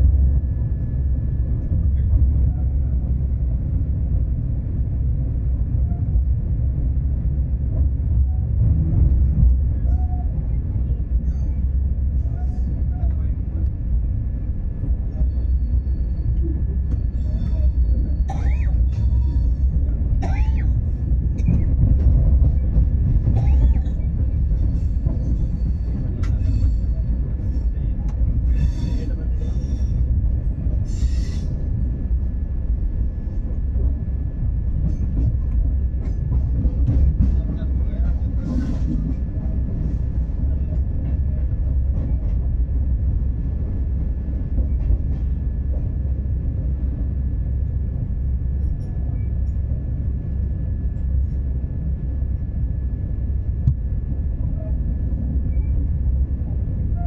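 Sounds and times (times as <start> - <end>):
train wheels rumbling: 0.0 - 57.0.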